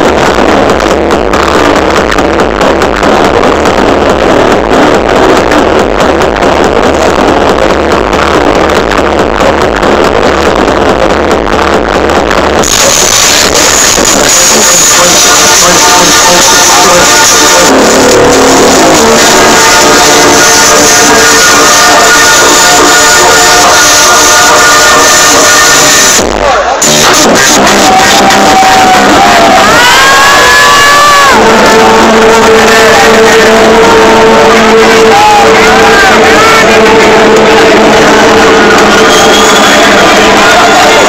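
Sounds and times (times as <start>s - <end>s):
held synth chords: 0.0s - 41.0s
trance music over sound system: 0.0s - 41.0s.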